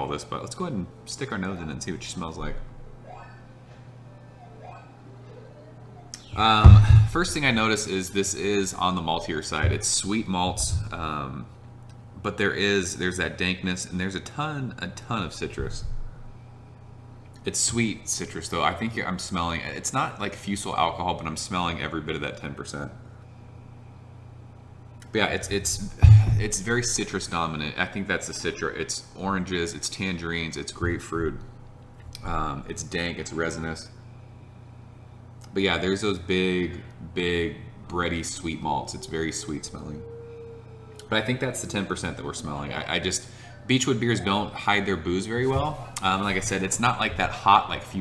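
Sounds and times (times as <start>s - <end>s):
faint background hiss: 0.0s - 48.0s
steady low hum: 5.1s - 48.0s.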